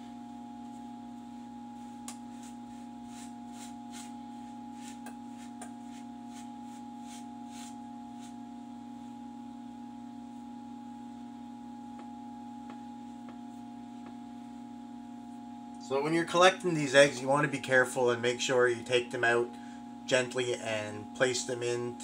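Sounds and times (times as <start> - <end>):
steady hum: 0.0 - 22.0.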